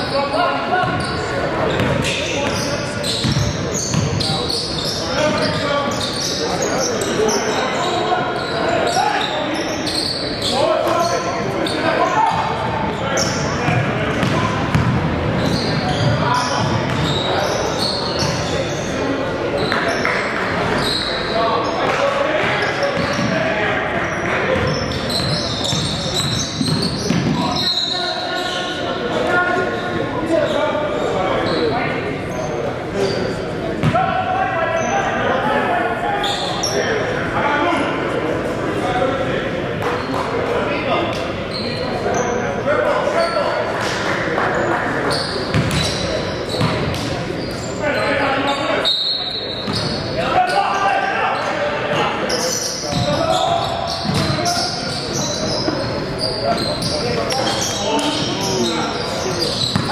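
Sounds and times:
basketball bouncing on wooden court: 1.7s - 2.6s, 3.2s - 4.2s, 13.7s - 17.2s, 24.6s - 27.4s, 45.5s - 46.0s, 46.6s - 47.0s, 52.9s - 53.2s, 54.0s - 54.4s.

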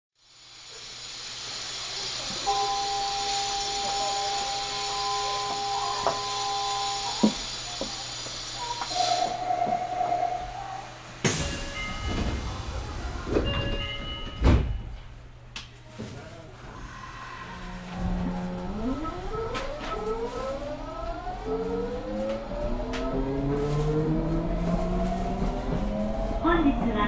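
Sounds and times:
train equipment hissing: 0.2s - 10.1s
low hum: 16.6s - 27.0s.

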